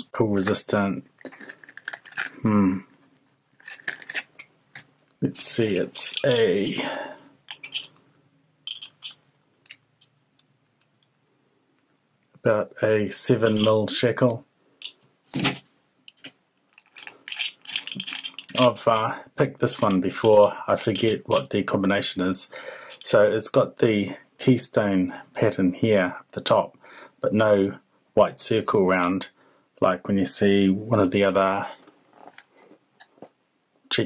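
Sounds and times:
metal padlocks handled: 1.2s - 2.4s, 3.5s - 4.9s, 7.5s - 7.9s, 8.7s - 9.8s, 16.1s - 18.9s.

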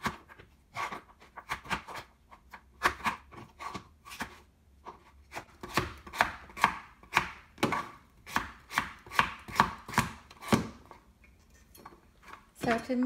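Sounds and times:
knife chopping on plastic board: 0.0s - 11.0s.

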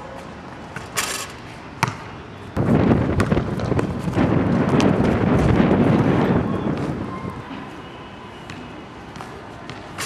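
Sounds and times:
basketball bouncing: 1.8s - 2.1s, 3.0s - 5.7s
loud rough rushing noise: 2.6s - 7.1s.

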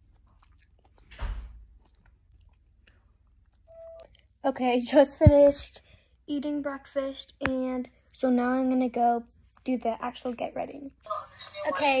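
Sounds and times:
person chewing: 0.0s - 4.4s.

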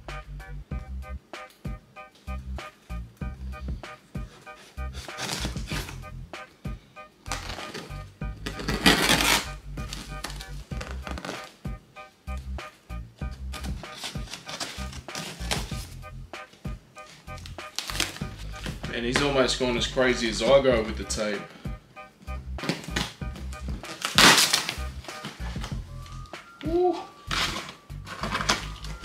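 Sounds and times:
background music with steady beat: 0.0s - 29.0s
tape tearing rasp: 4.3s - 6.1s, 7.3s - 11.6s, 13.5s - 16.0s, 17.0s - 19.4s, 22.6s - 23.2s, 23.8s - 25.7s, 27.3s - 29.0s
knife slicing packing tape: 4.5s - 6.0s, 7.3s - 11.5s, 13.5s - 16.0s, 17.4s - 18.8s, 22.6s - 23.2s, 23.8s - 25.4s
cardboard box scraping and knocking: 5.0s - 6.0s.

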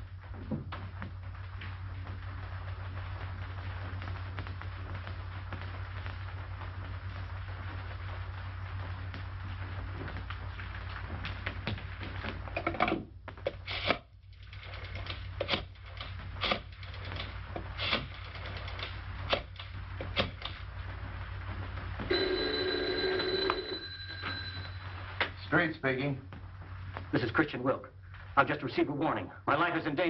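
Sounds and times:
steady hum and hiss: 0.0s - 30.0s
telephone bell ringing: 22.1s - 25.2s.

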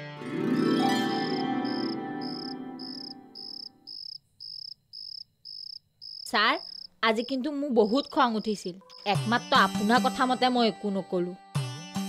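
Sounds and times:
sustained keyboard chord: 0.2s - 3.4s
cricket chirping: 1.1s - 9.2s.

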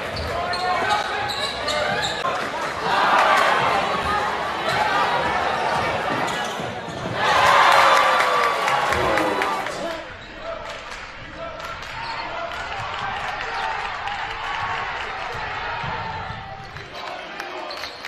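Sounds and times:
crowd noise: 0.0s - 18.0s.

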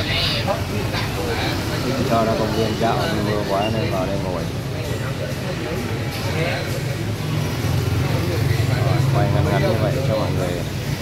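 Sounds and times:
indistinct voices talking: 0.0s - 11.0s
vehicle engine humming: 0.0s - 11.0s.

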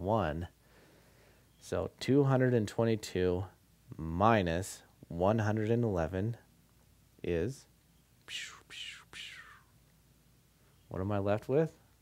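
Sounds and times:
person whispering: 8.3s - 9.7s.

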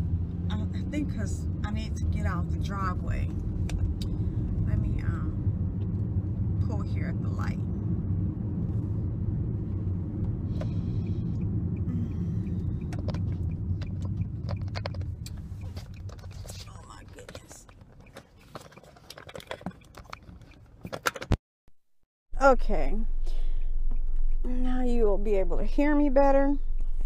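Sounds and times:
car interior rumble: 0.0s - 21.3s, 22.4s - 27.0s.

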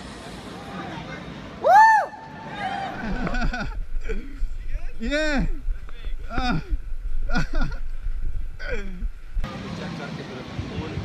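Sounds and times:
outdoor city ambience: 0.0s - 11.0s
wind rumbling on microphone: 3.0s - 9.5s.

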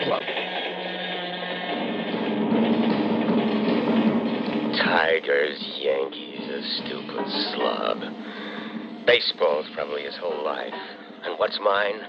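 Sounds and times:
passenger train running: 0.0s - 12.0s.

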